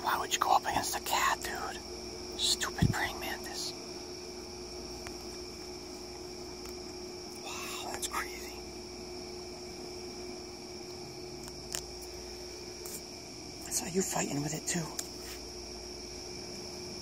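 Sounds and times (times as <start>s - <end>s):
background hum: 0.0s - 17.0s
whispered murmur: 2.4s - 3.8s, 7.4s - 8.6s.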